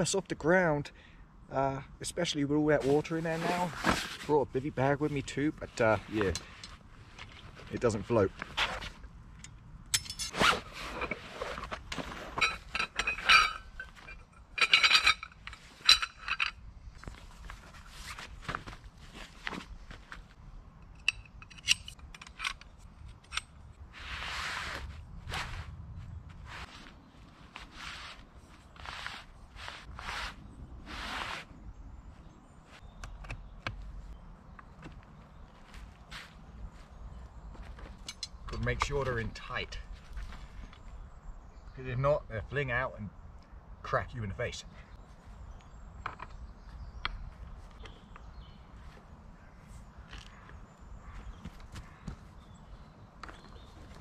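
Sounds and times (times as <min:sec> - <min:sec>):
fabric rustling and scraping: 0:02.8 - 0:04.5, 0:10.2 - 0:14.1, 0:17.1 - 0:20.4, 0:23.9 - 0:31.6
metal poles clinking: 0:09.3 - 0:17.6, 0:20.8 - 0:23.8, 0:37.6 - 0:39.6.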